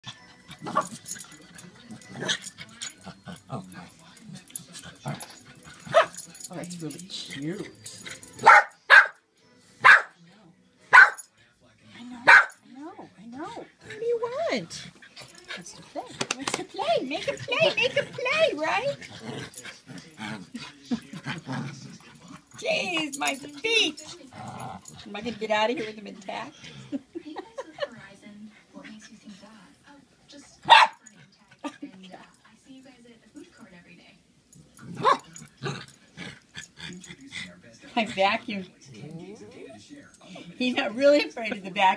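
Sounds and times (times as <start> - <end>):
dogs growling: 0.5 - 8.6, 13.1 - 27.1, 34.5 - 41.8
small dog barking: 8.4 - 9.2, 9.8 - 10.1, 10.9 - 11.2, 12.3 - 12.6, 30.6 - 31.1, 35.0 - 35.2.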